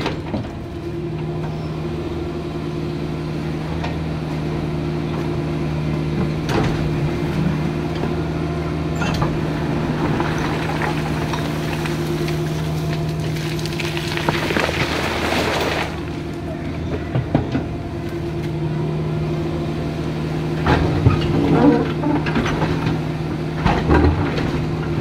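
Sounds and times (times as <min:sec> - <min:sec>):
excavator diesel engine running: 0:00.0 - 0:25.0
bucket clattering on stones: 0:10.1 - 0:16.0.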